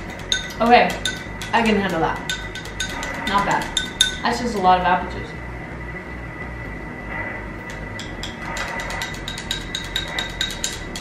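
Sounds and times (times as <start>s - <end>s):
knife clinking against glass: 8.0s - 11.0s.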